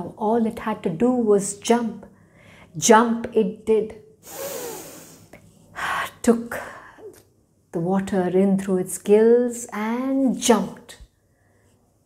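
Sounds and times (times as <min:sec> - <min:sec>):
woman speaking: 0:00.0 - 0:02.1, 0:02.8 - 0:04.0, 0:05.8 - 0:11.1
woman breathing in deeply: 0:04.2 - 0:05.3.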